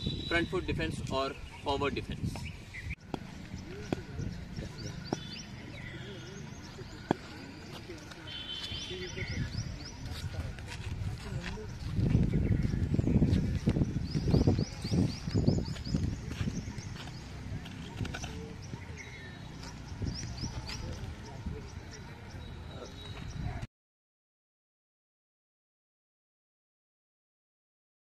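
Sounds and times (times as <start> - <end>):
birds chirping: 0.0 - 23.7.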